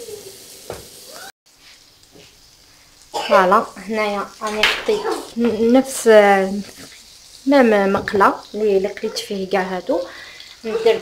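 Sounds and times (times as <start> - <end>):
faint hiss: 0.0 - 11.0
mushrooms sizzling in a pan: 0.0 - 11.0.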